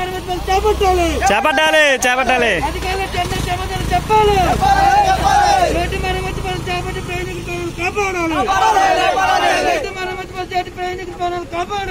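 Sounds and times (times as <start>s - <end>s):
men talking: 0.0s - 11.9s
vehicle engine rumble: 0.0s - 11.9s.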